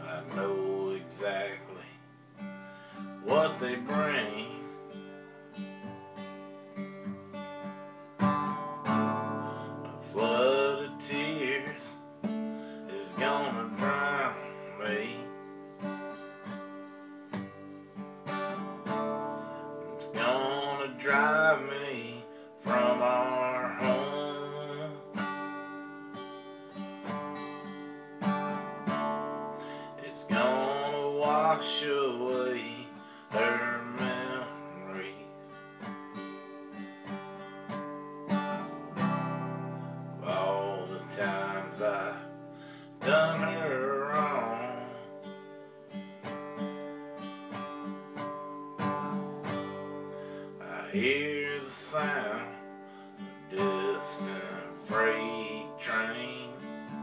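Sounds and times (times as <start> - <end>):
man singing: 0.0 - 2.1, 3.0 - 5.2, 9.2 - 12.1, 12.8 - 15.5, 19.0 - 25.3, 29.6 - 35.6, 39.0 - 45.3, 50.4 - 52.8, 53.4 - 57.0
acoustic guitar strumming: 0.0 - 57.0.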